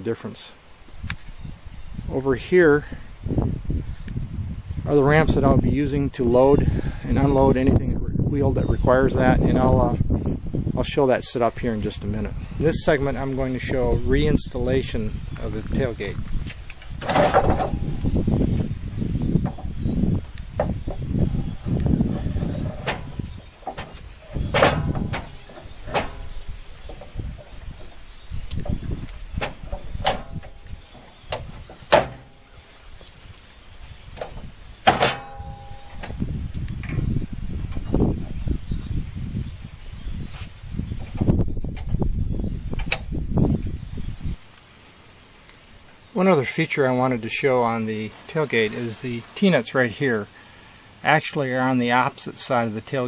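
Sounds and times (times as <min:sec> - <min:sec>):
low uneven rumble: 0:07.7 - 0:39.0
wood scraping and bumping: 0:15.4 - 0:33.5, 0:34.1 - 0:38.5
sharp wooden knocks: 0:17.0 - 0:17.8, 0:20.5 - 0:21.1.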